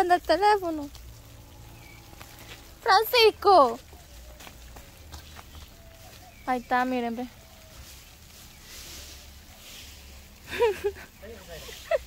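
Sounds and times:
garden sprinkler hissing: 0.0 - 12.0.

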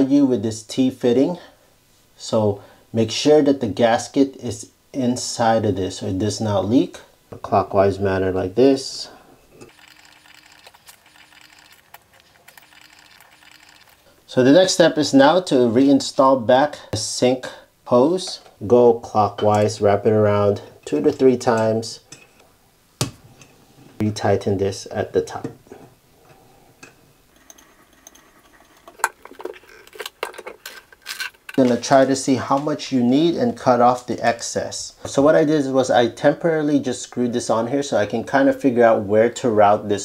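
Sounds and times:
handling noise: 28.0 - 32.0.

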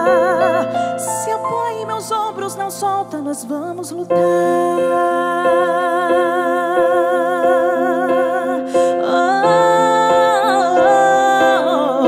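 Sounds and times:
gentle ballad accompaniment: 0.0 - 12.0
woman singing with vibrato: 0.0 - 12.0.

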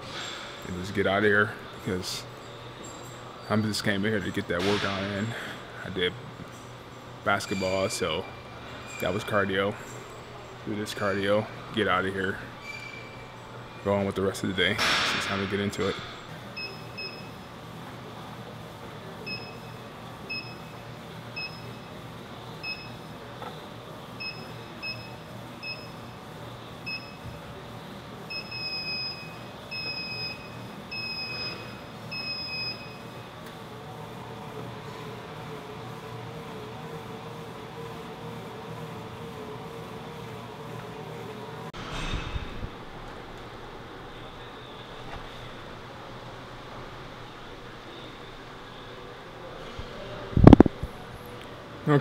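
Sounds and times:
low machine hum: 0.0 - 52.0.

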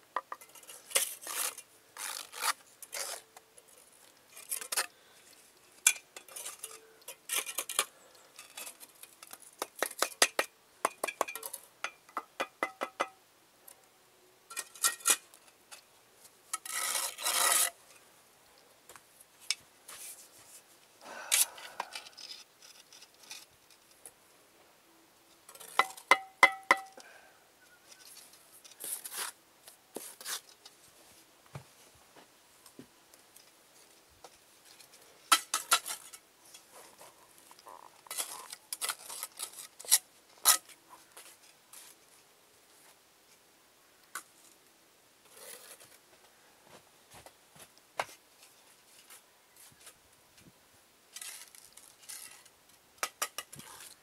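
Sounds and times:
trowel scraping on mortar: 0.5 - 3.3, 16.5 - 17.8
trowel tapping on bricks: 9.6 - 13.2, 25.6 - 27.0.

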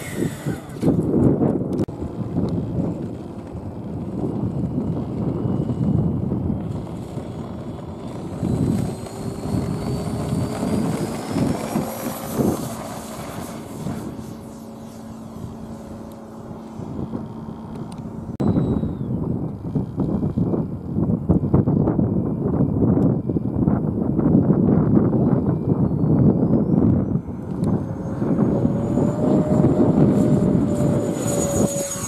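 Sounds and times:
electric jet motor whining: 0.0 - 32.0
wind buffeting microphone: 0.0 - 32.0.

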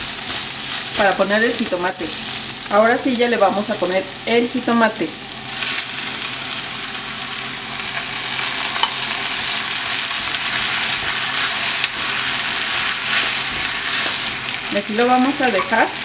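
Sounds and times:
vegetables sizzling in hot oil: 0.0 - 16.0.

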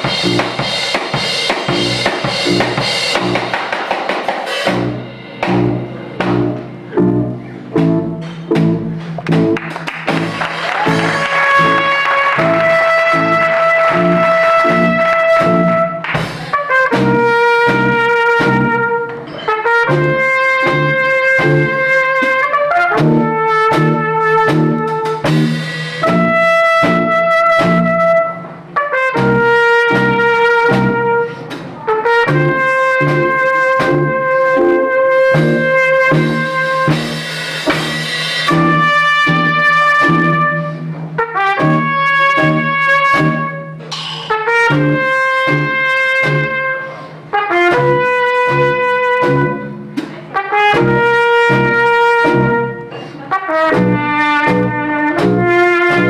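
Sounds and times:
trumpet playing jazz melody: 0.0 - 3.8, 4.6 - 56.0
band with drum kit: 0.0 - 56.0.

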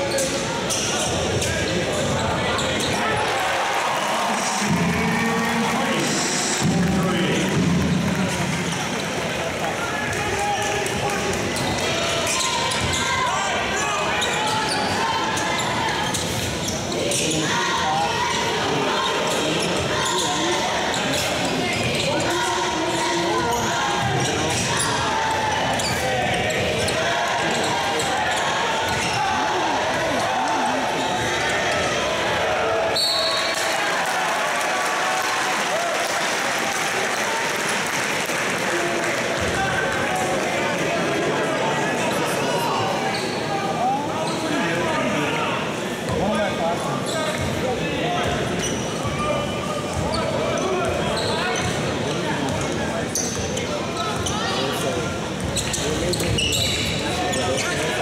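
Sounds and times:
crowd and players' voices: 0.0 - 58.0
referee's whistle: 33.0 - 33.6.

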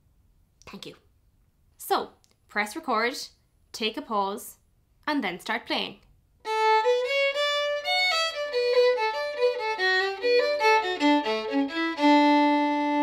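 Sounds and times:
solo fiddle tune: 6.4 - 13.0.

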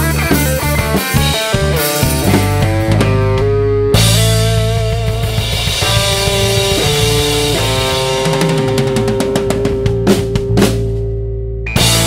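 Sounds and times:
held guitar notes: 0.0 - 12.0
live rock band playing: 0.0 - 12.0
fast run of drum hits: 0.4 - 3.3, 4.0 - 11.0.

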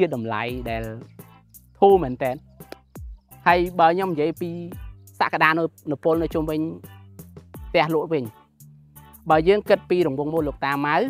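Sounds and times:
man speaking: 0.0 - 1.0, 1.8 - 2.4, 3.4 - 6.8, 7.7 - 8.4, 9.2 - 11.0
background music with low notes: 0.0 - 11.0.

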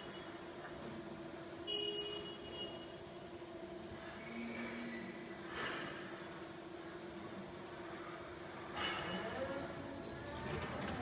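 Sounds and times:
truck running noise with rattles: 8.7 - 11.0.

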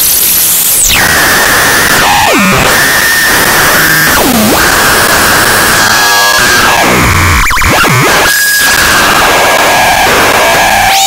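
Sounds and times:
high synthesizer whistle swooping: 0.8 - 9.1.

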